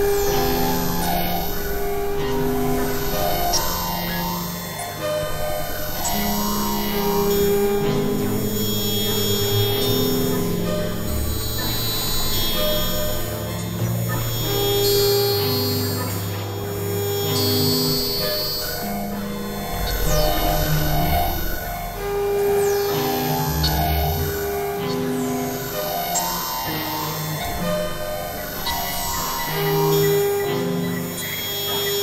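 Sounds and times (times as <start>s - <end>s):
synthesizer drone music: 0.0s - 32.0s.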